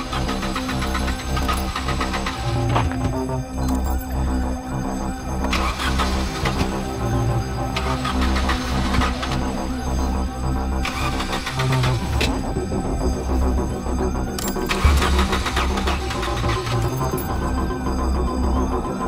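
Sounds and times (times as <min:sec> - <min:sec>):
car starter cranking engine: 0:00.0 - 0:18.0
tense film score: 0:00.0 - 0:19.0.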